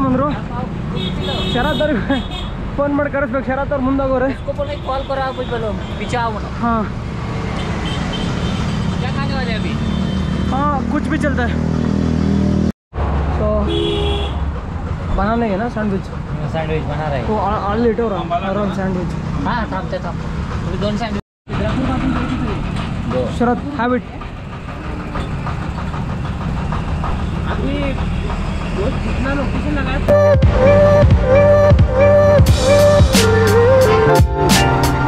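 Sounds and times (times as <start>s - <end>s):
engine rumbling: 5.7s - 35.0s
vehicle engine running: 18.8s - 30.1s.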